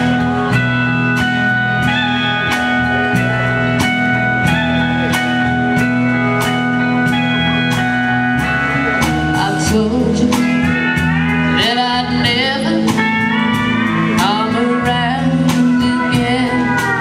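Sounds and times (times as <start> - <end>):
bass: 0.0 - 17.0
pedal steel guitar: 0.0 - 17.0
rhythm guitar: 0.0 - 17.0
steady drum beat: 0.0 - 17.0.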